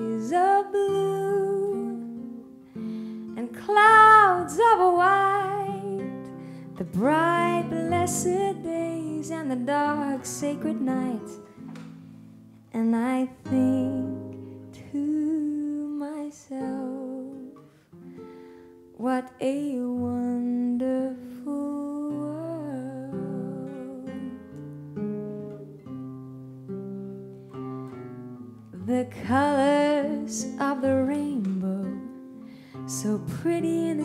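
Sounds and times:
woman singing jazz ballad: 0.0s - 2.2s, 3.4s - 11.5s, 12.7s - 17.6s, 19.0s - 24.4s, 28.8s - 32.2s, 32.9s - 34.0s
fingerpicked classical guitar: 0.0s - 34.0s.

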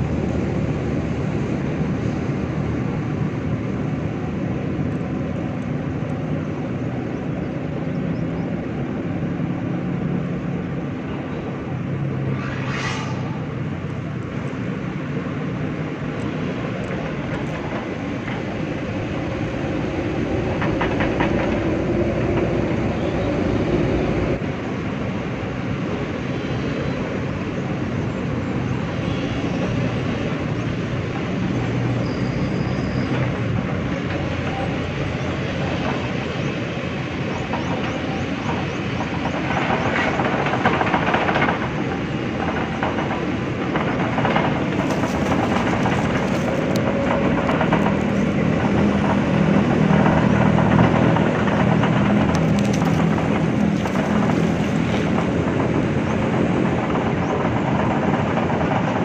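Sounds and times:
excavator engines rumbling: 0.0s - 59.0s
high mechanical whine: 10.0s - 20.2s.

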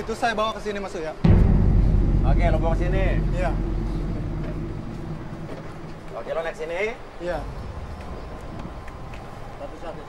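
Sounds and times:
deep low rumble: 1.3s - 7.1s.

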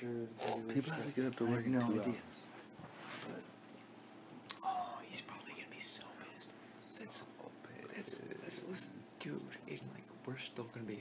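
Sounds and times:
person whispering: 4.6s - 8.9s.

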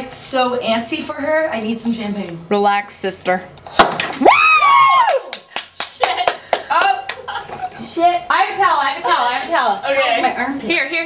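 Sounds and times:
woman shrieking: 4.2s - 5.3s.

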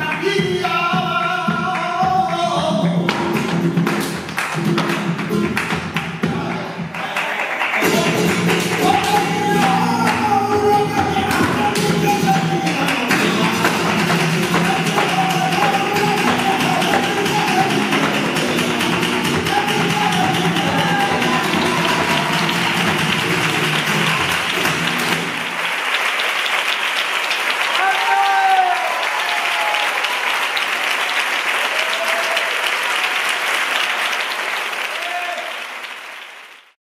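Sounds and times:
flamenco singing: 0.0s - 25.4s
hand-clapping: 1.6s - 36.8s
audience applause: 3.8s - 36.8s
audience cheering: 6.3s - 36.5s
guitar: 7.8s - 25.3s.

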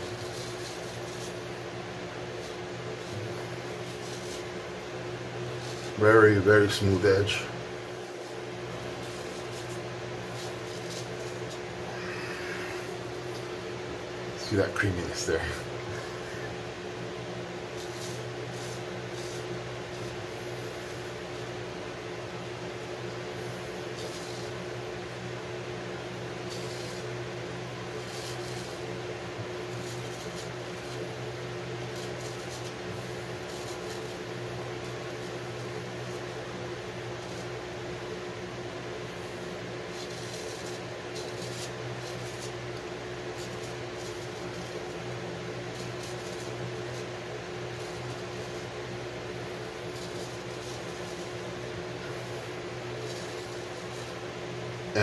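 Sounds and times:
razor scraping through lather: 0.0s - 1.5s, 2.4s - 4.6s, 5.5s - 7.4s, 8.0s - 13.6s, 17.7s - 21.6s, 23.3s - 24.7s, 26.3s - 37.6s, 39.2s - 55.0s
electric fan humming: 0.0s - 55.0s.

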